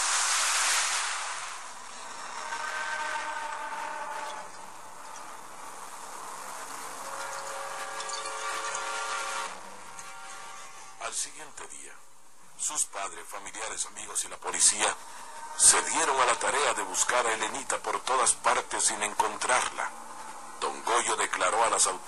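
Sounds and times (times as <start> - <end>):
rushing splash into long hiss: 0.0 - 2.3
eerie drone tones: 0.0 - 11.2, 14.4 - 22.0.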